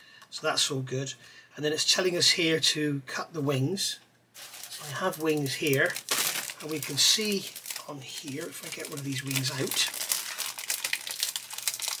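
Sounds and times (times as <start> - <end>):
plastic bag crinkling: 4.4 - 12.0.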